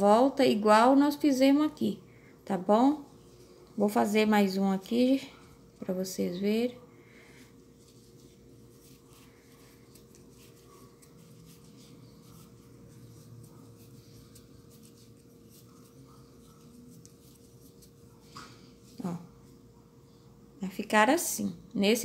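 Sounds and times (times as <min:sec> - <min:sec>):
crochet hook scratching thread: 0:08.2 - 0:18.2.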